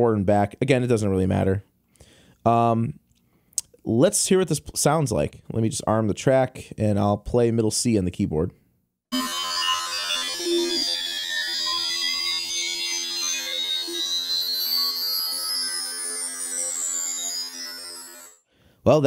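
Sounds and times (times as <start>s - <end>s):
dense synthesizer drone: 9.1s - 18.3s
high gliding tones: 9.1s - 18.4s.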